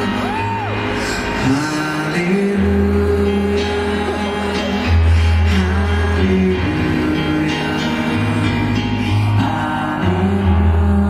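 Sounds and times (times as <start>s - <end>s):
acoustic guitar: 0.0s - 11.0s
man singing: 0.0s - 11.0s.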